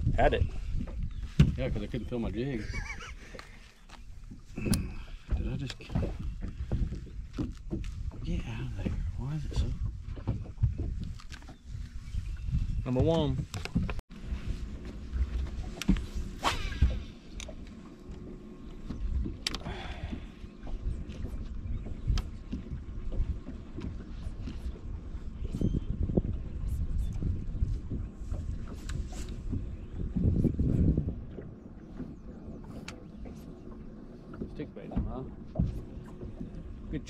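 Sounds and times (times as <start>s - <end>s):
wind on microphone: 0.0s - 17.7s, 18.8s - 37.0s
water lapping against hull: 0.0s - 37.0s.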